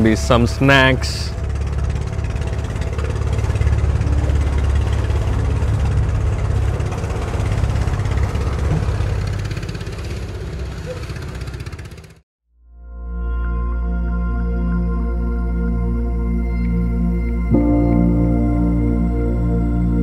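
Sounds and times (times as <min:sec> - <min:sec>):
soft ambient music: 0:00.0 - 0:07.3, 0:12.7 - 0:20.0
boat engine running: 0:00.0 - 0:12.2, 0:15.1 - 0:20.0.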